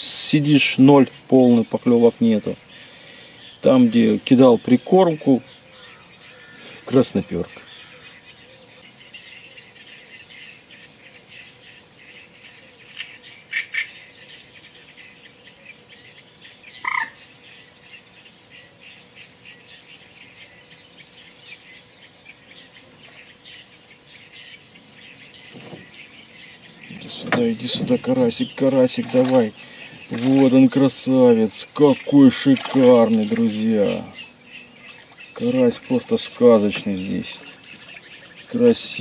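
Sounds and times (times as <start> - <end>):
birds chattering: 0.0 - 39.0
loud short bird calls: 5.4 - 27.9.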